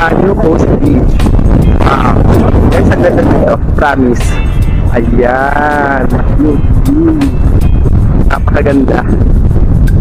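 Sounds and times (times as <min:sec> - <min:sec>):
faint background music: 0:00.0 - 0:10.0
wind buffeting microphone: 0:00.0 - 0:10.0.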